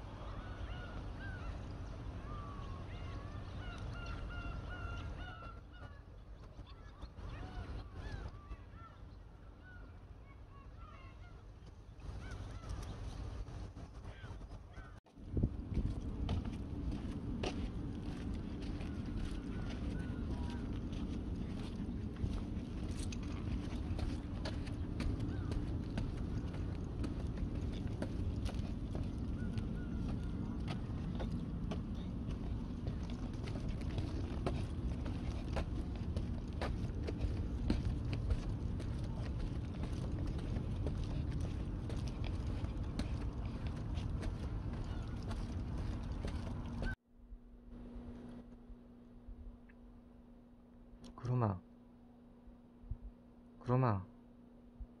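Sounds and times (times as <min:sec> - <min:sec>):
flock of birds calling: 0:00.0 - 0:10.0, 0:12.0 - 0:13.2, 0:18.1 - 0:47.0
low rumble: 0:15.2 - 0:50.7.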